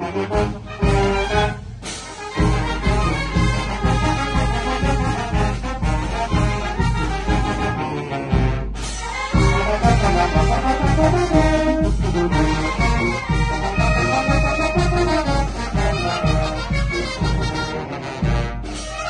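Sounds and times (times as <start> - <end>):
wind band playing: 0.0 - 19.0.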